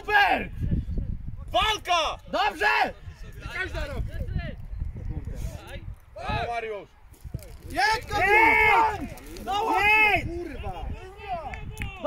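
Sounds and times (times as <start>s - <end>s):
man shouting: 0.0s - 0.5s, 1.6s - 3.0s, 7.8s - 12.0s
faint shouting: 7.9s - 12.0s.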